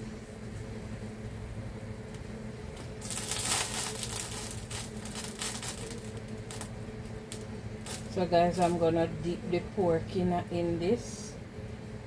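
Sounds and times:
steady low hum: 0.0 - 12.0
paper wrapper crinkling: 2.8 - 8.8.

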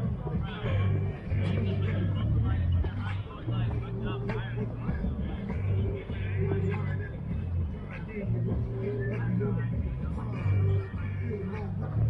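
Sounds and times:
loud low hum: 0.0 - 12.0
people talking: 0.0 - 12.0.

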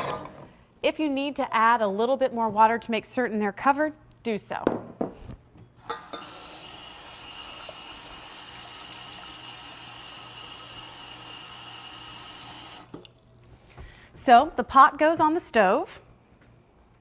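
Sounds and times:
faucet water running into saucepan: 5.8 - 13.0.

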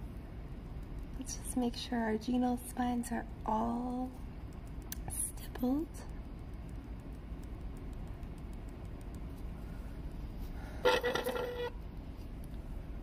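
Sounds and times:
short steady toot: 10.8 - 11.7.

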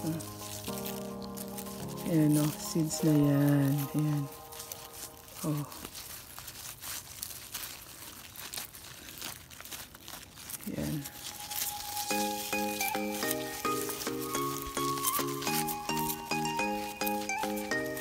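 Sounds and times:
instrumental background music: 0.0 - 5.4, 11.2 - 18.0
fingers rubbing sunflower seeds: 0.0 - 18.0.

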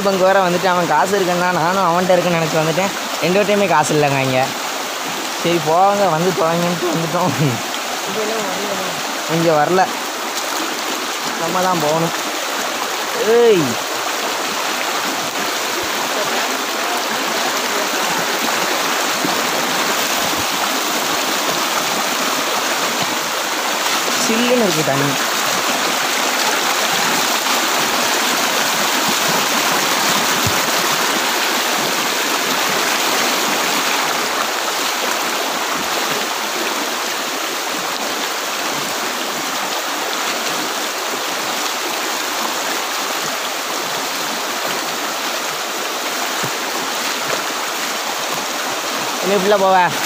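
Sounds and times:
stream water rushing over rocks: 0.0 - 50.0.

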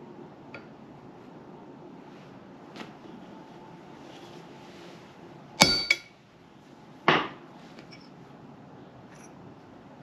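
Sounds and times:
hammer striking steel chisel: 5.6 - 6.1.

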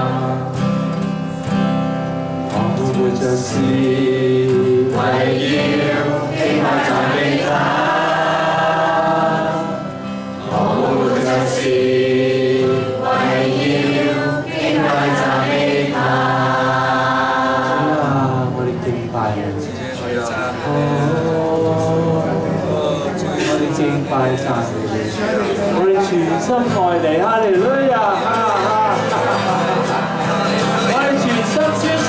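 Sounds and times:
man leading singing: 0.0 - 0.8, 2.5 - 32.0
congregation singing: 0.0 - 1.6, 2.4 - 32.0
acoustic guitar: 0.0 - 32.0.

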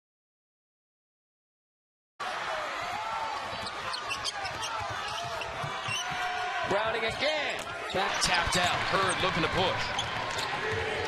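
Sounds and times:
arena crowd noise: 2.2 - 11.0
sneakers squeaking: 3.5 - 6.4, 7.1 - 11.0.

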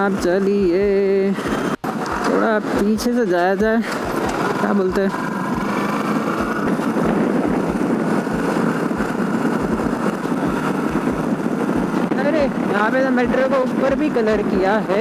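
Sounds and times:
motorcycle engine running: 0.0 - 15.0
wind noise on microphone: 0.0 - 15.0.

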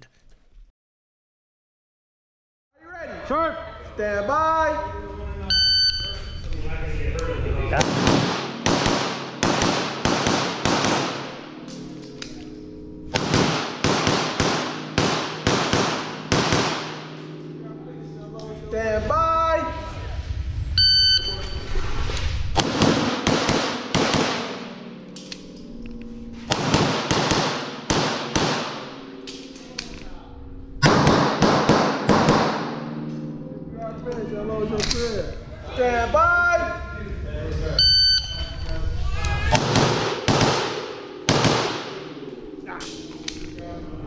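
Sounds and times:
pistol shots echoing indoors: 7.8 - 17.5, 22.6 - 25.6, 26.4 - 30.1, 30.8 - 33.3, 39.5 - 43.5
brief ringing tone: 20.8 - 21.8.

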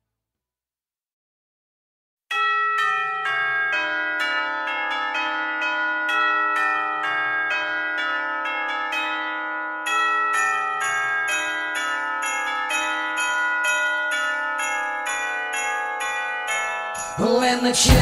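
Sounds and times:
bell-like chimes melody: 2.3 - 18.0.

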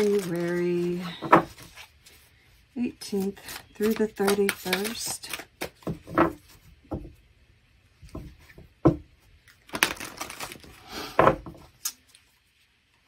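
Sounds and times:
cards being shuffled: 0.0 - 2.3, 3.0 - 6.6.

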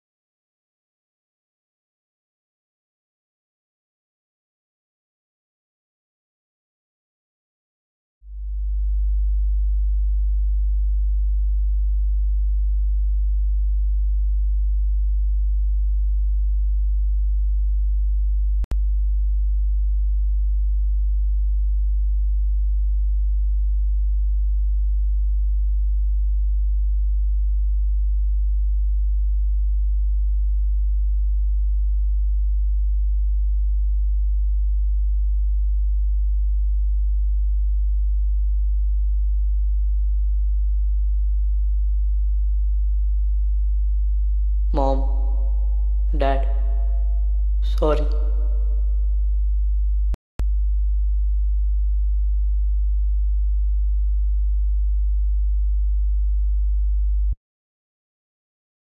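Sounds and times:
steady low hum: 25.9 - 55.5.

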